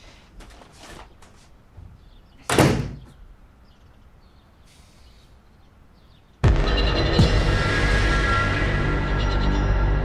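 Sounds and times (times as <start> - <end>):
door slamming shut: 2.4 - 3.2.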